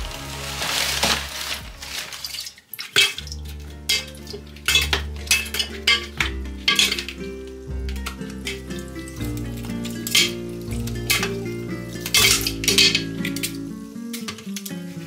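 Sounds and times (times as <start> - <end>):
instrumental background music: 0.0 - 15.0.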